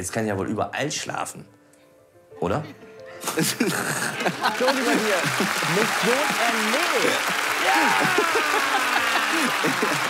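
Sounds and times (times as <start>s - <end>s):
applause: 4.1s - 10.0s
man cheering and exclaiming: 4.6s - 10.0s.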